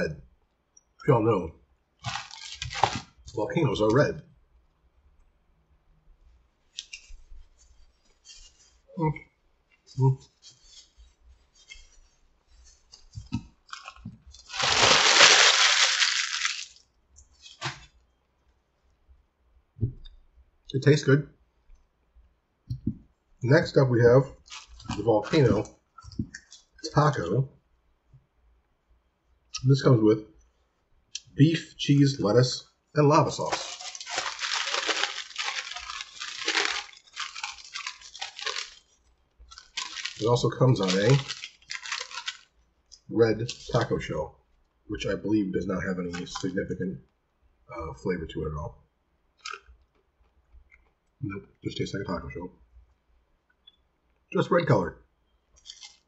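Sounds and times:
paper wrapper crinkling: 0:02.0 - 0:03.4, 0:12.6 - 0:16.8, 0:17.4 - 0:17.9, 0:24.4 - 0:25.7, 0:33.4 - 0:42.5, 0:43.4 - 0:44.0, 0:46.0 - 0:46.6, 0:55.6 - 0:56.0
person chewing crunchy food: 0:13.8 - 0:16.8, 0:33.6 - 0:38.9, 0:39.5 - 0:42.5.

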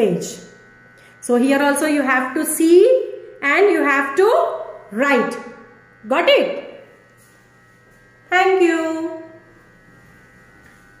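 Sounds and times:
woman's voice: 0:00.0 - 0:00.5, 0:01.2 - 0:06.8, 0:08.3 - 0:09.4
faint steady hum: 0:00.0 - 0:11.0.

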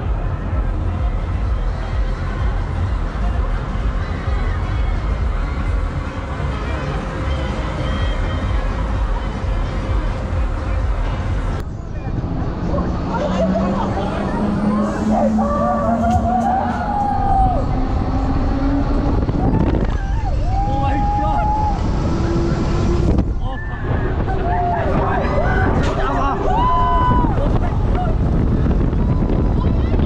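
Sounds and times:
wind buffeting microphone: 0:08.4 - 0:30.0
people crying out: 0:12.8 - 0:18.2, 0:23.4 - 0:28.3.

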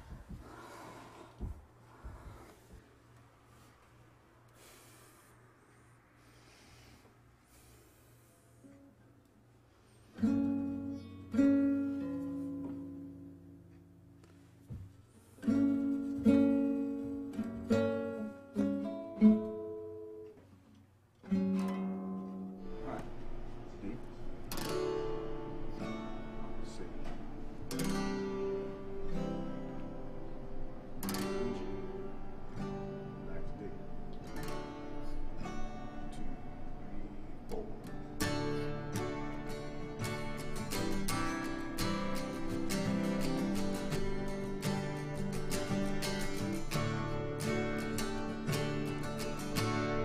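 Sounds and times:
acoustic guitars strumming: 0:09.7 - 0:50.0.

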